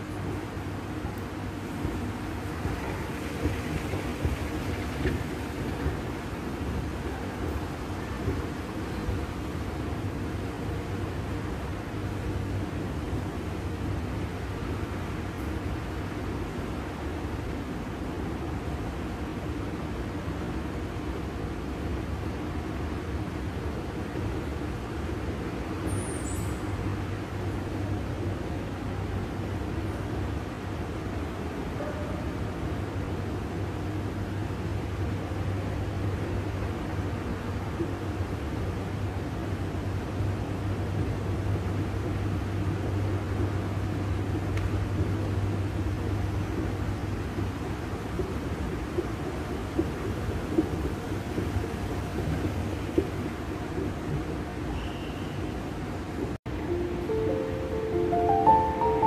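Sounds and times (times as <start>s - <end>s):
moving walkway humming: 0.0s - 59.0s.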